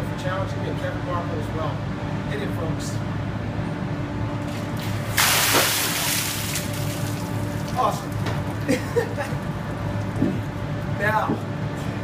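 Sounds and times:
water splashing onto concrete: 4.9 - 8.2.

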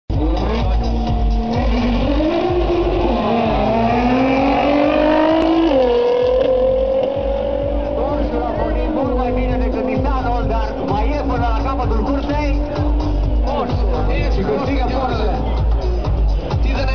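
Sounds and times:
racing car engines accelerating: 0.1 - 16.9.

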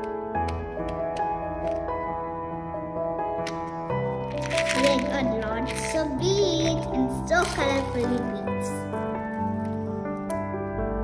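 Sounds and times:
plastic lid crackling open: 0.0 - 2.0, 3.4 - 8.3
background music: 0.0 - 11.0.

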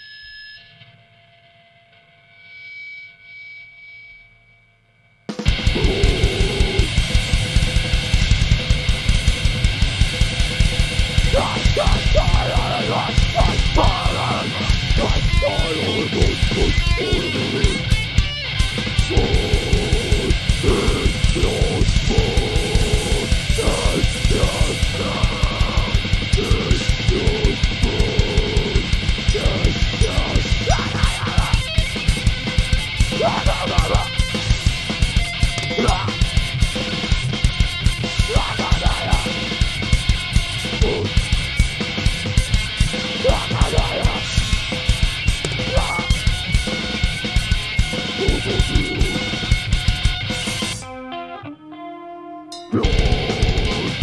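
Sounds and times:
distorted electric guitars: 5.3 - 54.0
fast drum beat: 5.4 - 50.8, 52.7 - 54.0
shouted vocals: 5.6 - 7.0, 11.3 - 17.9, 18.9 - 32.2, 32.9 - 34.3, 35.6 - 36.3, 38.2 - 39.6, 40.7 - 41.3, 43.1 - 44.6, 45.4 - 46.3, 48.0 - 49.4, 52.7 - 54.0.

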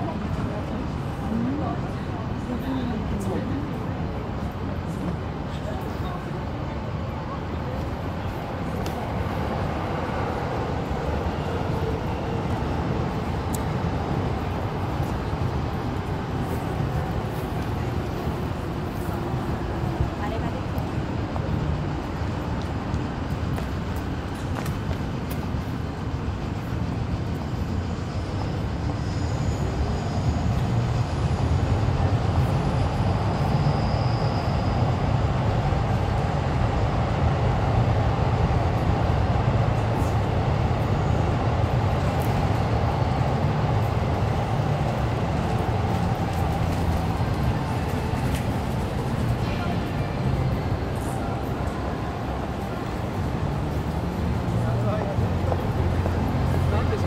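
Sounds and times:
passersby talking: 0.0 - 29.1, 34.4 - 57.0
low rumble of street traffic: 0.0 - 57.0.

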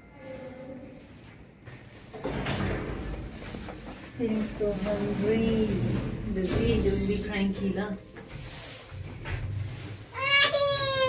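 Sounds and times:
elevator doors sliding: 2.0 - 9.9.

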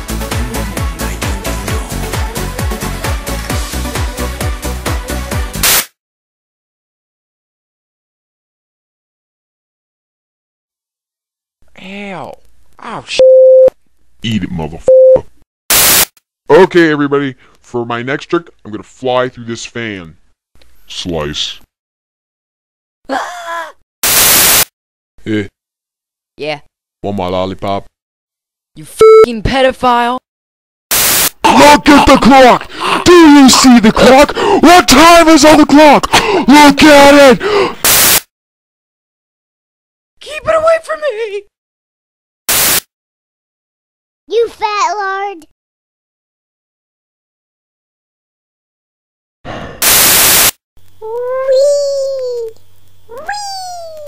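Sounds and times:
burst of static hiss: 5.6 - 5.9, 15.7 - 16.2, 24.0 - 24.7, 30.9 - 31.4, 37.8 - 38.3, 42.5 - 42.9, 49.8 - 50.6.

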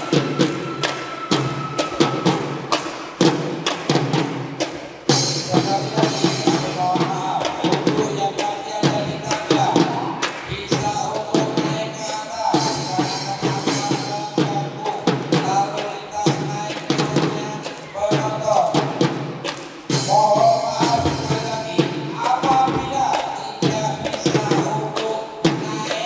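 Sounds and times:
children's drum band playing: 0.0 - 26.0.

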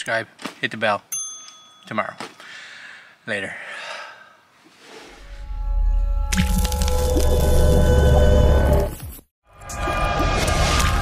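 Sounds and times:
held ringing tones: 1.1 - 2.2.

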